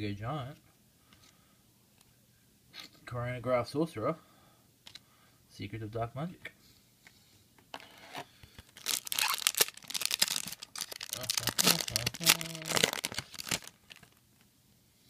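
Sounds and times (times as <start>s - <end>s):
foil pack crinkling and tearing: 8.7s - 14.2s.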